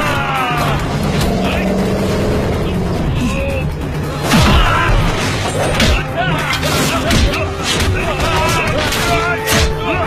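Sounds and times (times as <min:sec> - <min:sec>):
people shouting: 0:00.0 - 0:01.9, 0:04.2 - 0:10.0
action film music: 0:00.0 - 0:10.0.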